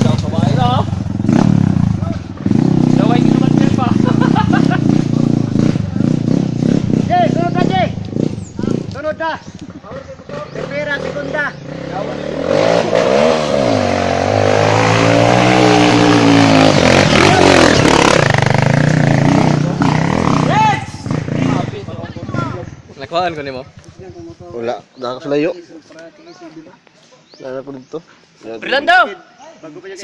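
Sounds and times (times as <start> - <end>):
dirt bike engine revving: 0.0 - 24.9.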